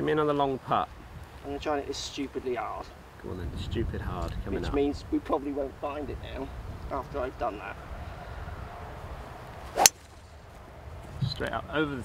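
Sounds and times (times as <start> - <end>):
wind rumbling on microphone: 3.2 - 12.0
golf club swishing: 9.6 - 10.2
golf club striking ball: 9.7 - 10.2.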